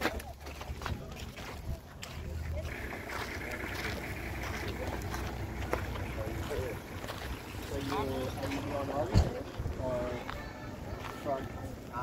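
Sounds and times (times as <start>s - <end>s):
distant people talking: 0.0s - 12.0s.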